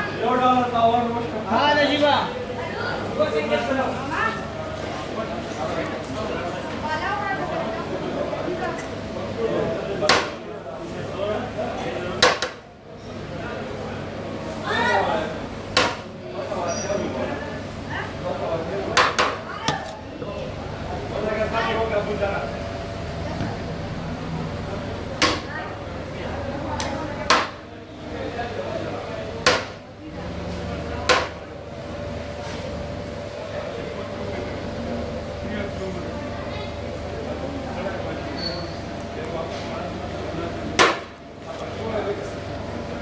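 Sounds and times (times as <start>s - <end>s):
busy background: 0.0s - 43.0s.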